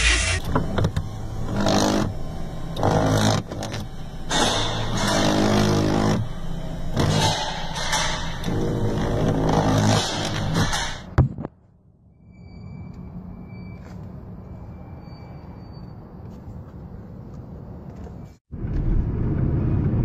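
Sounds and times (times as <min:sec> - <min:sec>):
power window motor whirring: 0:00.0 - 0:11.0.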